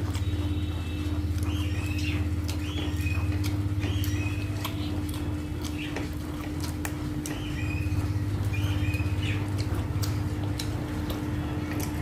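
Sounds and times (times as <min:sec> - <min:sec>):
chewing: 0:00.0 - 0:12.0
steady low hum: 0:00.0 - 0:12.0.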